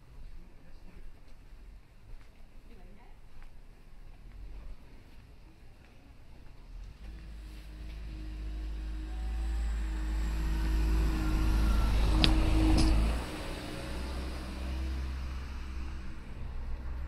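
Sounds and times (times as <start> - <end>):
car engine rumbling: 6.4 - 17.0.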